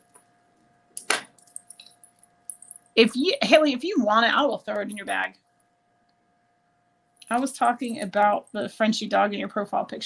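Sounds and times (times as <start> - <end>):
bracelet links clinking: 1.0 - 3.0, 7.2 - 8.2.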